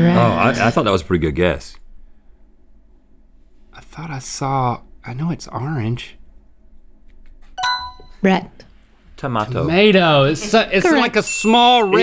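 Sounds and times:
electronic game-show ding: 0:07.6 - 0:08.2.

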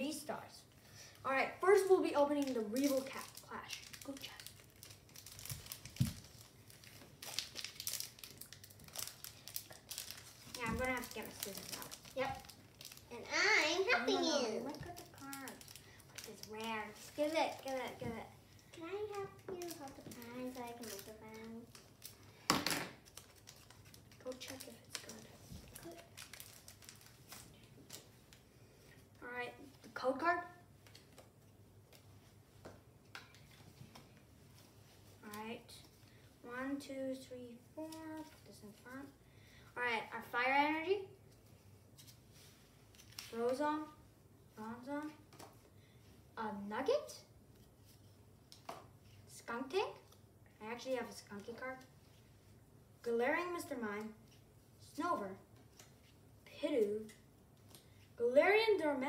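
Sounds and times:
foil wrapper crinkling: 0:02.3 - 0:13.2, 0:14.6 - 0:18.0, 0:19.1 - 0:28.0.

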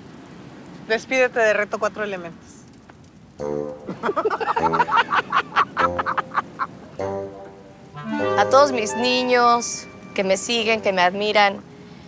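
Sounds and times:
background music: 0:03.4 - 0:12.0
people laughing: 0:03.9 - 0:07.0.

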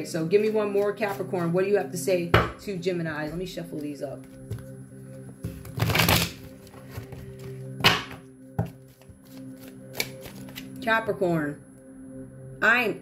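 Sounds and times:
soft background music: 0:00.0 - 0:13.0
cards riffle shuffling: 0:05.5 - 0:07.5, 0:08.9 - 0:10.8
cards snapping: 0:05.6 - 0:06.5, 0:08.9 - 0:10.8.

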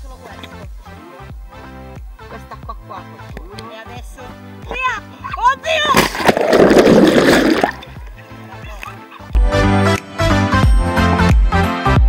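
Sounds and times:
water splash: 0:05.8 - 0:08.2.

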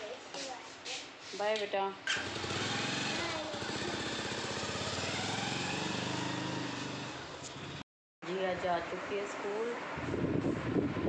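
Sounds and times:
motorcycle engine pulling away: 0:02.1 - 0:07.8.

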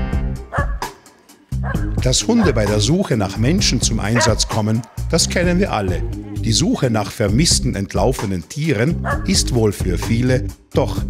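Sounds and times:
background music: 0:00.0 - 0:11.0
dog barking: 0:00.5 - 0:01.0, 0:01.6 - 0:02.7, 0:04.2 - 0:05.0, 0:09.0 - 0:09.3.

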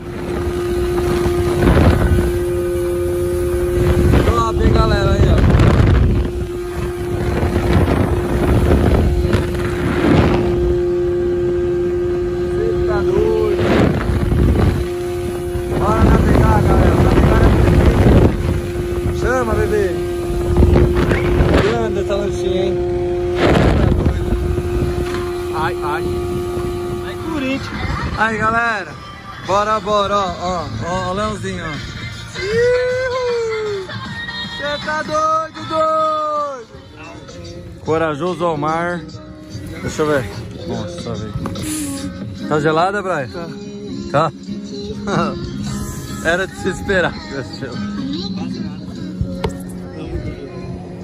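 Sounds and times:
wind buffeting microphone: 0:00.0 - 0:30.4
outboard motor running: 0:00.0 - 0:51.0.

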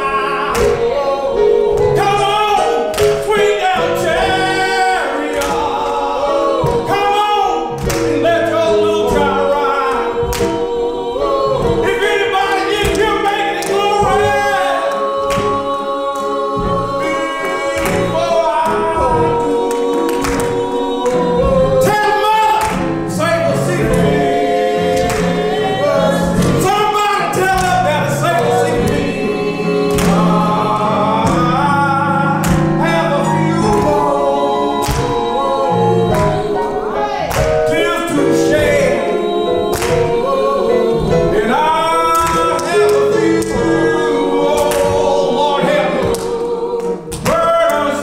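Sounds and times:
group of voices singing: 0:00.0 - 0:48.0
hand clapping: 0:00.5 - 0:00.9, 0:02.0 - 0:29.2, 0:29.8 - 0:31.8, 0:32.4 - 0:34.2, 0:34.8 - 0:36.6, 0:37.3 - 0:39.0, 0:39.7 - 0:40.4, 0:42.0 - 0:48.0
man singing into a microphone: 0:11.8 - 0:15.2, 0:30.4 - 0:34.2.

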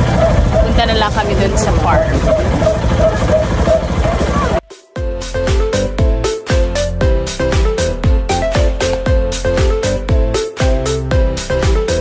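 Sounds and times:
motorcycle engine running: 0:00.0 - 0:04.6
road rumble: 0:00.0 - 0:04.6.

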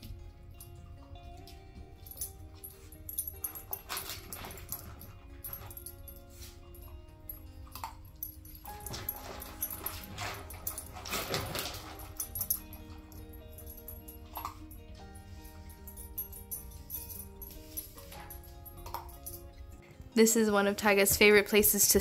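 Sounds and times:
background music with held notes: 0:00.0 - 0:22.0.

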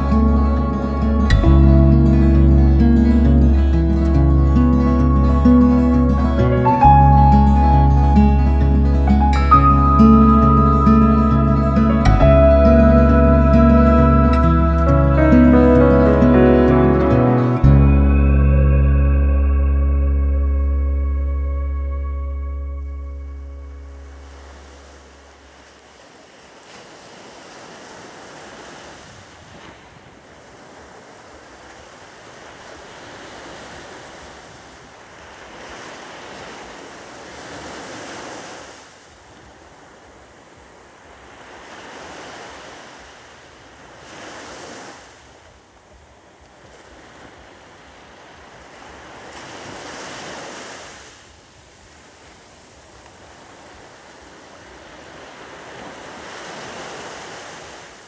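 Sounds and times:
music track: 0:00.0 - 0:24.7
surf breaking on beach: 0:46.6 - 0:58.0.

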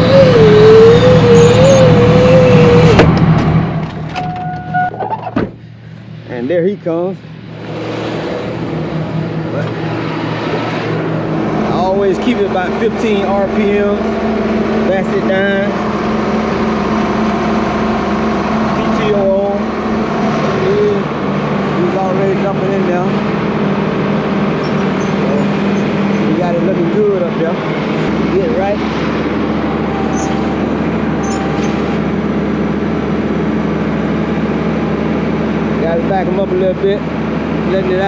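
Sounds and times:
tractor diesel engine drone: 0:00.0 - 0:38.0
person's voice: 0:11.6 - 0:14.1, 0:14.9 - 0:15.8, 0:21.7 - 0:23.2, 0:26.2 - 0:27.6, 0:28.2 - 0:28.9.

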